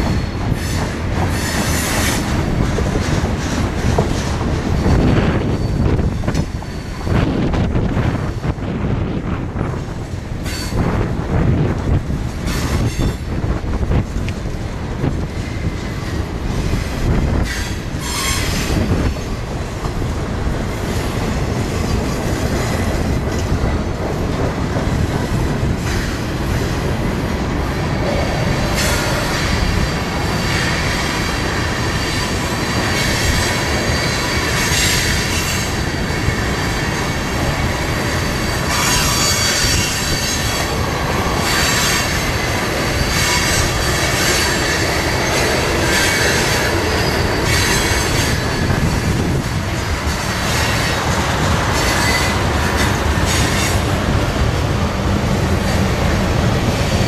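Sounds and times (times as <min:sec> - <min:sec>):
train wheels rumbling on rail: 0:00.0 - 0:57.0
high-pitched wheel squeal: 0:17.4 - 0:18.9, 0:38.1 - 0:40.8.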